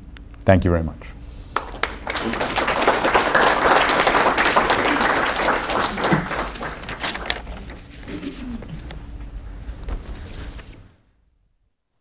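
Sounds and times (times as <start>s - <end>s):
audience clapping: 1.5s - 8.0s
low murmuring voice: 8.0s - 8.9s.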